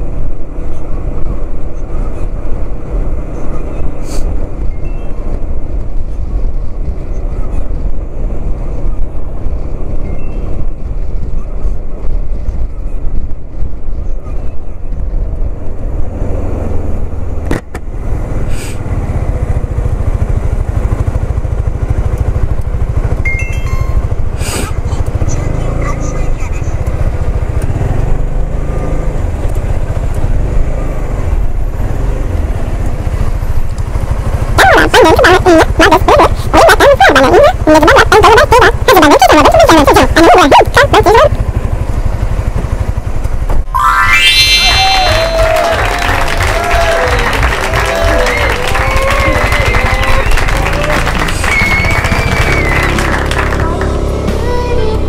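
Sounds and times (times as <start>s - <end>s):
scooter engine rumble: 0.0s - 55.0s.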